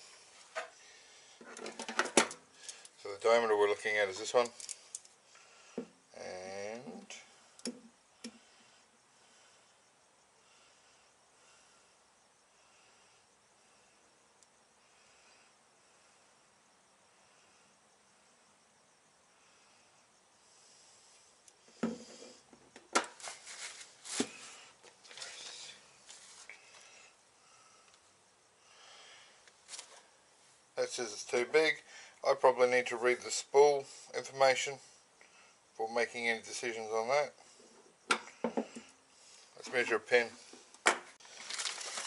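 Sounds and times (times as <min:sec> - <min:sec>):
faint hiss: 0:00.0 - 0:42.0
paper rustling: 0:23.1 - 0:26.5, 0:41.2 - 0:42.0.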